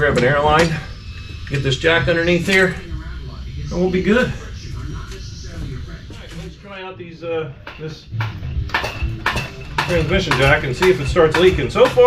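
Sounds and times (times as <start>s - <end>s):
metal clanks and knocks: 7.6s - 12.0s.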